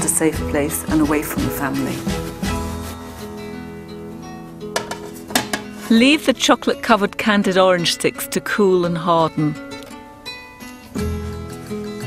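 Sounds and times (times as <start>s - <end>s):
acoustic guitar music: 0.0s - 12.0s.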